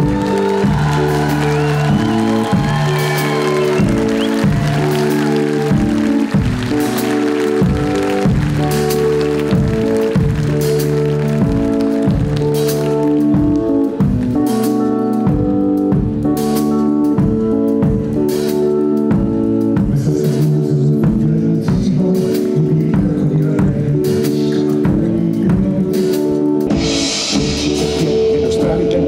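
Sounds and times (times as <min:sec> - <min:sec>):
audience applause and cheering: 0:00.0 - 0:14.9
live band playing: 0:00.0 - 0:29.0.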